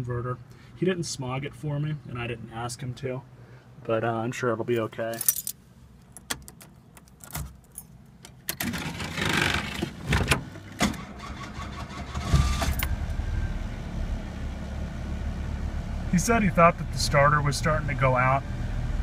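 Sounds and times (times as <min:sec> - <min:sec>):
keys jangling: 0:05.1 - 0:08.0
starter cranking engine: 0:10.9 - 0:12.8.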